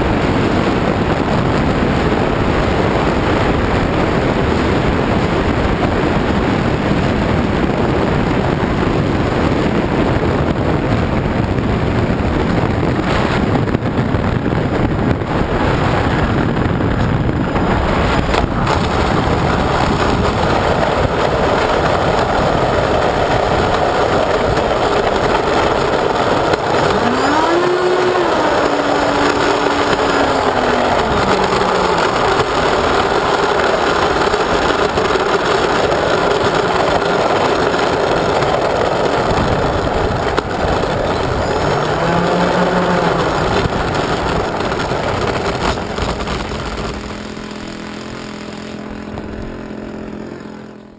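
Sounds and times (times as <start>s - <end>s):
model jet fans whining: 0.0s - 50.9s.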